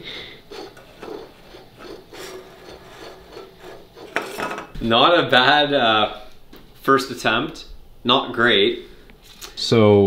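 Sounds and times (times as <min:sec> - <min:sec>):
cans scraping across tabletop: 0:00.4 - 0:04.8.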